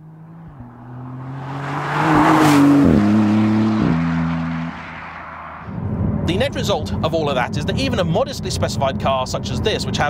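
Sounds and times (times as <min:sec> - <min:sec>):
sports car accelerating past: 0:00.0 - 0:06.3
engine upshifts: 0:00.0 - 0:10.0.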